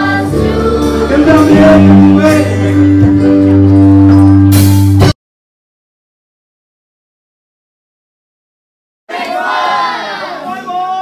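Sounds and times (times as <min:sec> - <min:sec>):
young voices singing together: 0:00.0 - 0:03.0, 0:09.1 - 0:10.6.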